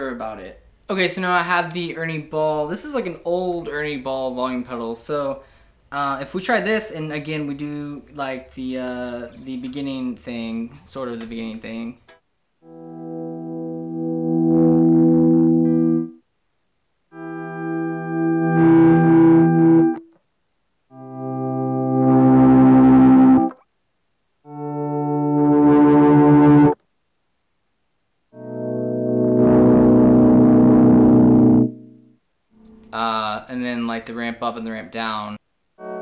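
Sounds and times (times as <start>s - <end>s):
electric guitar chords: 12.6s - 16.2s, 17.1s - 20.1s, 20.9s - 23.6s, 24.5s - 26.8s, 28.4s - 33.0s, 35.8s - 36.0s.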